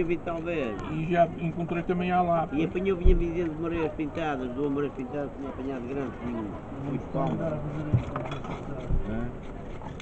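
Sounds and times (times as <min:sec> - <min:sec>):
knife scraping fish scales: 0:07.3 - 0:10.0.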